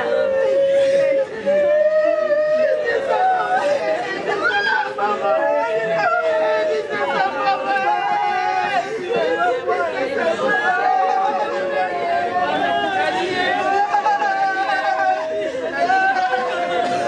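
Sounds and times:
women wailing and crying: 0.0 - 17.0.

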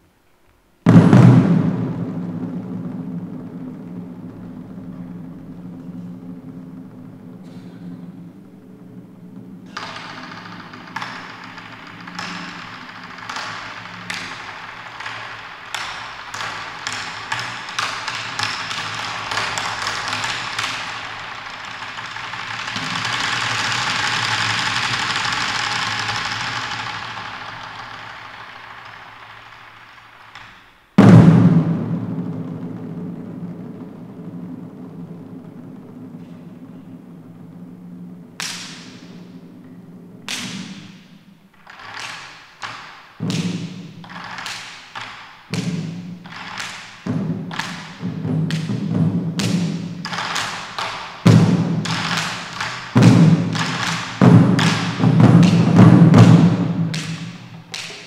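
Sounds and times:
drum roll: 0.0 - 58.0
drum ensemble playing: 0.8 - 27.6, 30.9 - 41.5, 43.1 - 44.6, 45.4 - 58.0
loud massed drum hit: 0.8 - 28.8, 31.0 - 41.5, 45.5 - 57.8.

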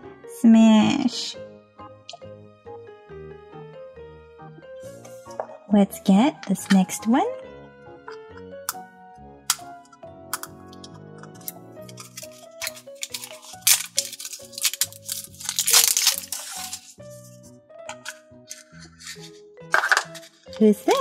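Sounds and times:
background music: 0.0 - 21.0
plastic shrink-wrap crinkling and tearing: 11.4 - 17.4.

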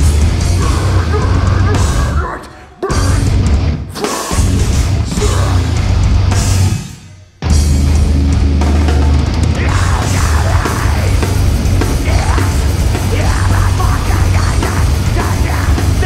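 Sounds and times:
heavy metal band playing: 0.0 - 16.0
harsh screamed vocals: 0.3 - 5.9, 9.5 - 16.0.

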